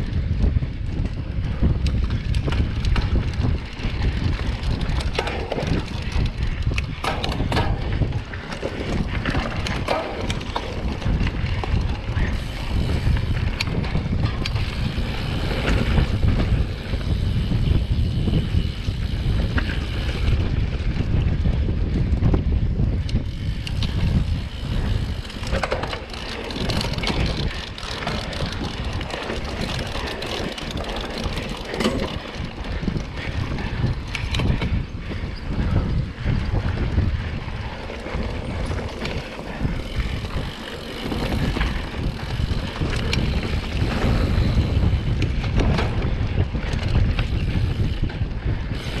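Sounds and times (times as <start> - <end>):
bike clicks and rattles: 0.0 - 49.0
bike tyre noise: 0.0 - 49.0
wind buffeting microphone: 0.0 - 49.0.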